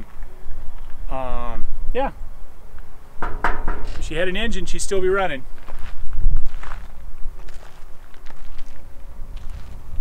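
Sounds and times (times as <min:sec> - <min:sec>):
wind rumble on microphone: 0:03.2 - 0:10.0
footsteps on gravel: 0:05.5 - 0:09.8.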